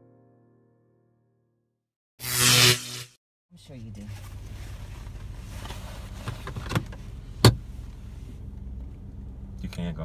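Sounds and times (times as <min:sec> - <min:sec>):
low hum inside car cabin: 0:03.6 - 0:10.0.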